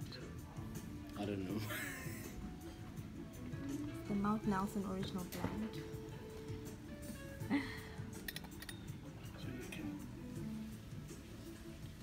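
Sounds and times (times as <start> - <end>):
soft background music: 0.0 - 12.0
tableware clinking: 8.2 - 9.1.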